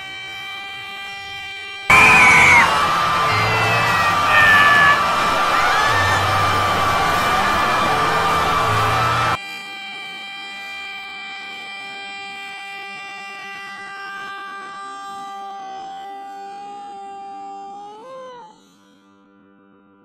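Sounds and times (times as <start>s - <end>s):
distorted cartoon voice screaming: 1.9s - 9.4s
held drone of several pitches: 1.9s - 9.4s.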